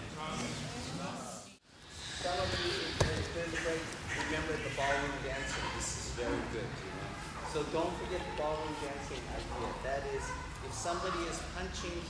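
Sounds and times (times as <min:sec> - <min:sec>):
indistinct voices: 0:01.8 - 0:12.0.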